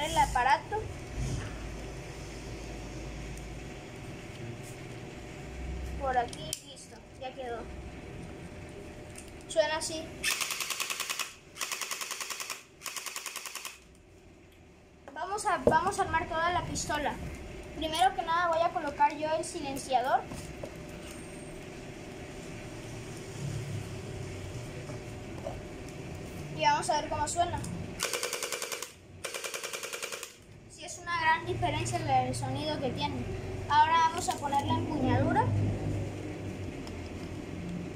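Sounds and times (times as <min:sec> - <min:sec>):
gel blaster motor clatter: 0:10.2 - 0:13.9, 0:28.0 - 0:30.4
toy gun firing fast rattle: 0:10.2 - 0:13.9, 0:28.0 - 0:30.4.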